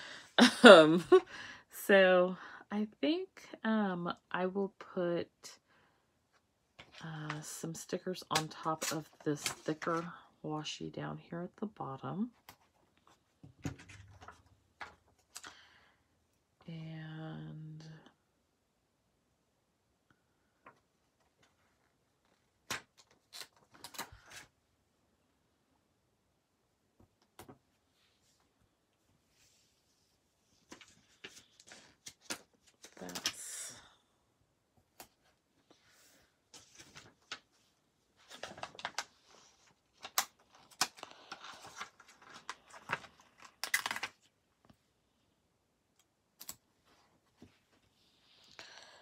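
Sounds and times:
paper clicks and rustles: 0:30.6 - 0:33.4, 0:36.5 - 0:44.3.

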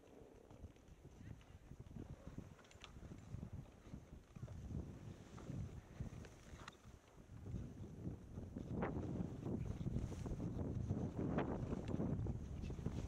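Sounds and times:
wind buffeting microphone: 0:00.5 - 0:13.0.

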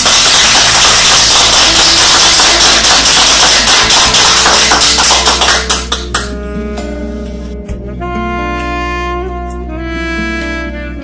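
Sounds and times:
group applauding: 0:00.0 - 0:06.4.

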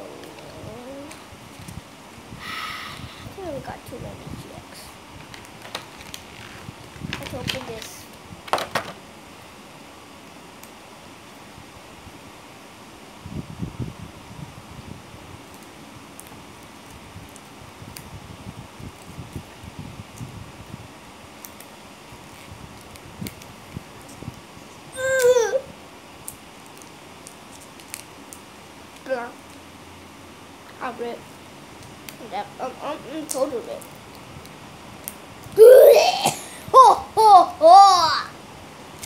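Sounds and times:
child babbling: 0:00.0 - 0:01.2, 0:25.0 - 0:25.7, 0:35.6 - 0:38.3
foil pack crinkling: 0:05.2 - 0:07.9
sharp crackles: 0:05.2 - 0:08.0, 0:26.2 - 0:29.6.

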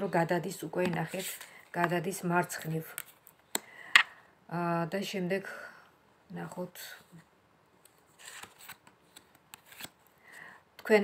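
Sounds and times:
papery card rustle: 0:07.9 - 0:10.0.

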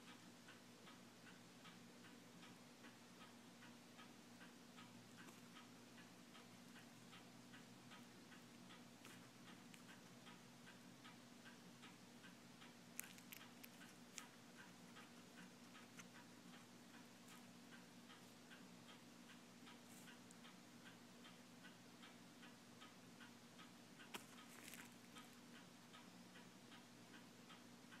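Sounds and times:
faint regular ticking: 0:00.0 - 0:28.0
low steady hum: 0:00.0 - 0:28.0.

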